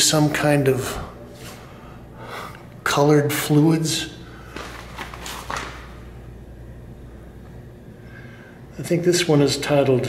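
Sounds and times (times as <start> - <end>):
man speaking: 0.0 - 1.2, 2.8 - 4.2, 8.8 - 10.0
low room tone: 0.0 - 10.0.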